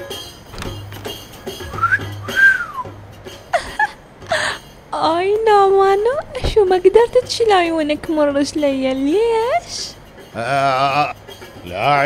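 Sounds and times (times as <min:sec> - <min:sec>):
soft background music: 0:00.0 - 0:12.0
wolf whistle: 0:01.6 - 0:03.0.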